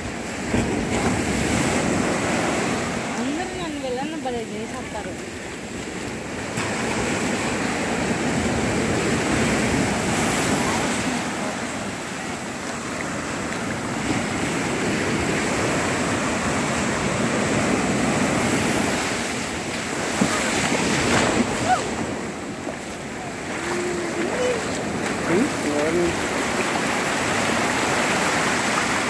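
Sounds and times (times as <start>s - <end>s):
sea surf washing over sand and rocks: 0.0s - 29.0s.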